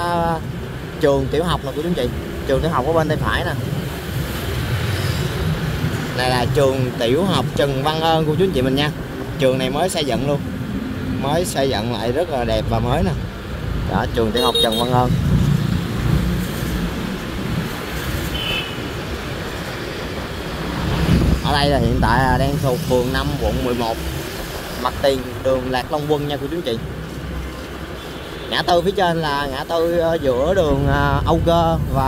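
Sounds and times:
city traffic rumble: 0:00.0 - 0:32.0.

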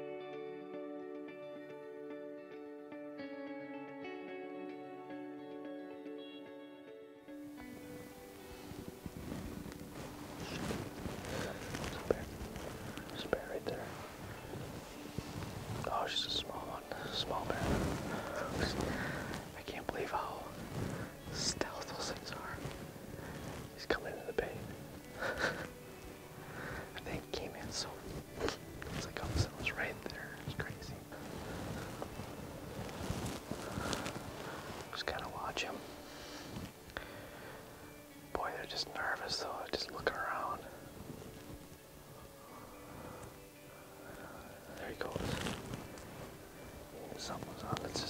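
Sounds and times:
man whispering: 0:10.4 - 0:14.2, 0:15.7 - 0:25.7, 0:26.9 - 0:32.2, 0:34.8 - 0:35.9, 0:38.3 - 0:40.8, 0:44.0 - 0:45.6, 0:46.9 - 0:48.0.

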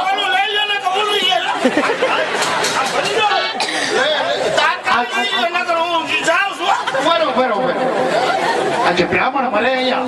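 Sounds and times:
man speaking into a microphone: 0:00.0 - 0:02.1, 0:02.9 - 0:08.1, 0:08.8 - 0:10.0.

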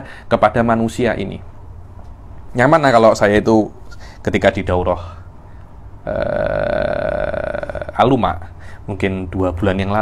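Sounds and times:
man saying drawn-out ehhh: 0:06.0 - 0:08.1.

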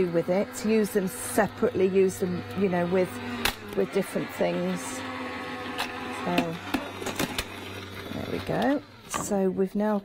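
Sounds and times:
die-cutting machine humming: 0:00.0 - 0:09.5.

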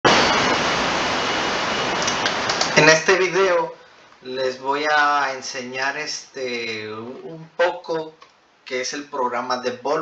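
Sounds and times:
loud steady rushing noise: 0:00.0 - 0:03.2.

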